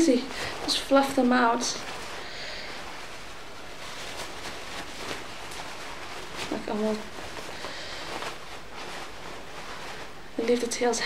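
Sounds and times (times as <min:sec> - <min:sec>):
soft fabric rustling: 0:00.0 - 0:11.0
steady background hiss: 0:00.0 - 0:11.0.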